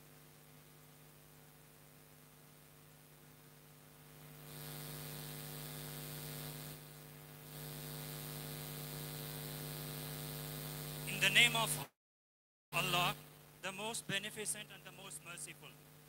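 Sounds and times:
electrical buzz: 3.5s - 11.8s.

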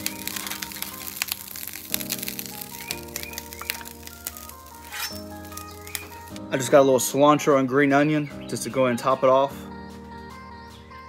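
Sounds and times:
sauce crackling on hot griddle: 0.0s - 6.8s.

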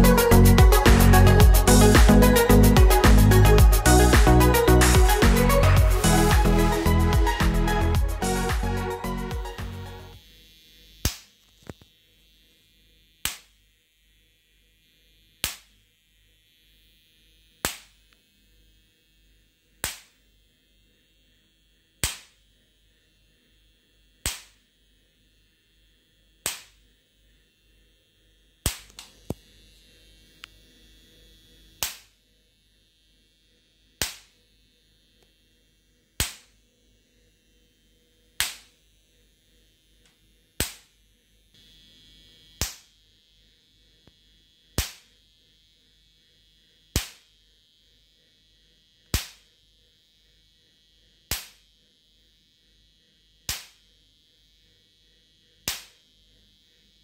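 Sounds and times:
electric sparks snapping: 11.0s - 11.9s, 13.2s - 13.6s, 15.4s - 15.8s, 17.6s - 18.0s, 19.8s - 20.2s, 22.0s - 22.4s, 24.2s - 24.6s, 26.4s - 26.8s, 28.6s - 29.4s, 31.8s - 32.1s, 34.0s - 34.3s, 36.2s - 36.5s, 38.4s - 38.7s, 40.6s - 40.9s, 42.6s - 42.9s, 44.8s - 45.1s, 47.0s - 47.3s, 49.1s - 49.5s, 51.3s - 51.6s, 53.5s - 53.8s, 55.7s - 56.0s.

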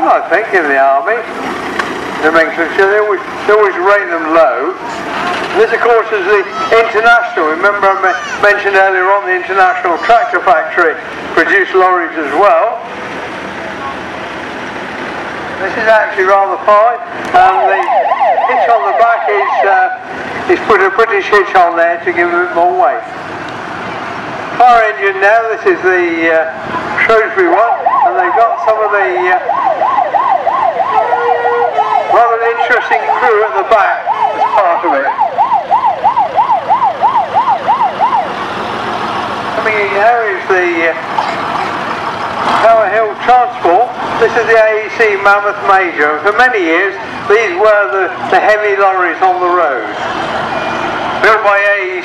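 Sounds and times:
vehicle engines rumbling: 0.0s - 52.0s.

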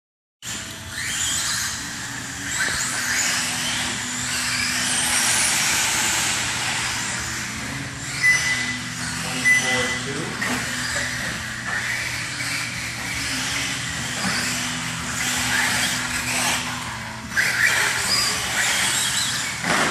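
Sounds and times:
electric motor whine: 0.4s - 19.9s.

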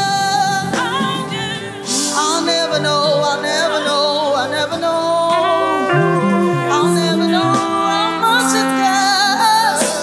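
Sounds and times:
backing singers: 0.0s - 10.0s
band with electric bass: 0.0s - 10.0s
woman singing lead: 0.0s - 10.0s.

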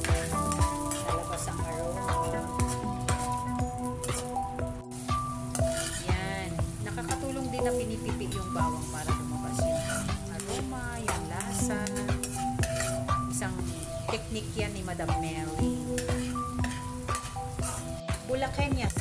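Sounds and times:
background music with held notes: 0.0s - 19.0s
garlic sizzling in oil: 0.0s - 19.0s
metal spoon scraping pan: 5.4s - 6.2s, 8.8s - 14.3s, 15.8s - 18.0s.

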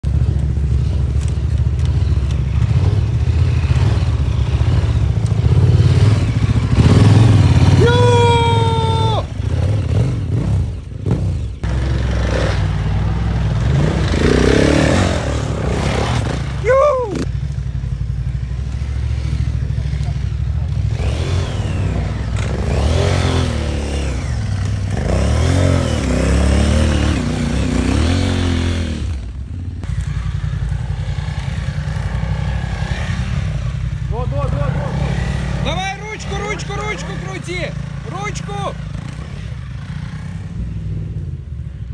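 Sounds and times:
dirt bike engines revving: 0.0s - 41.9s
people calling out: 7.6s - 9.4s, 16.6s - 17.3s, 34.1s - 38.9s.

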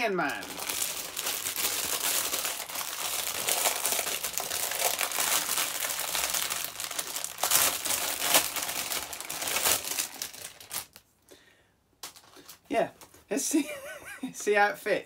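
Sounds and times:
plastic bag crinkling: 0.0s - 11.1s.

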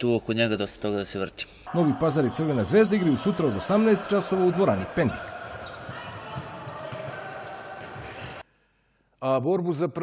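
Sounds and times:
footsteps echoing in a hall: 1.9s - 8.5s
ball bouncing: 5.5s - 8.4s.

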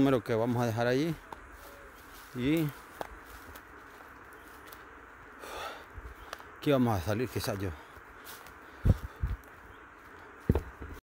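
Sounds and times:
breathy exhale: 5.4s - 5.9s.

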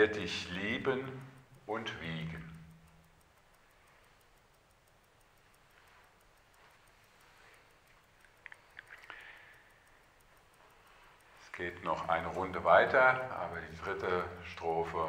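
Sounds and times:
faint short clicks: 0.0s - 15.0s.

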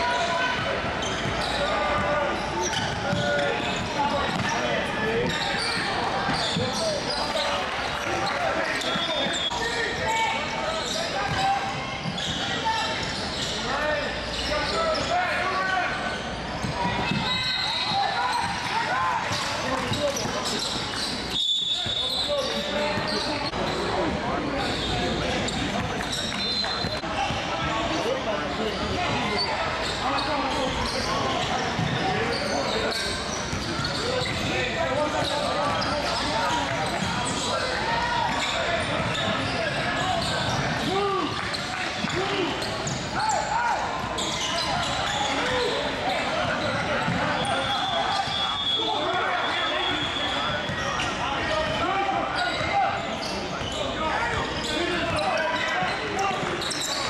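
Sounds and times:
hubbub of voices: 0.0s - 57.0s.

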